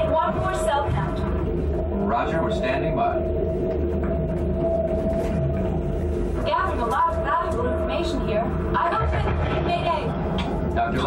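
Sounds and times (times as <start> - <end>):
deep continuous rumble: 0.0 - 11.0
steady droning tone: 0.0 - 11.0.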